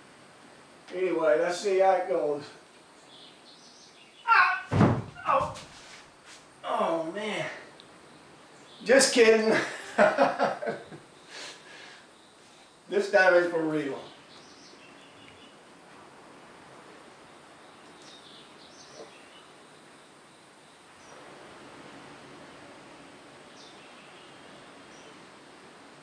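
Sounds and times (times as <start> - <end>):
faint steady hiss: 0.0 - 26.0
faint high bird chirps: 13.9 - 15.6, 17.3 - 20.0.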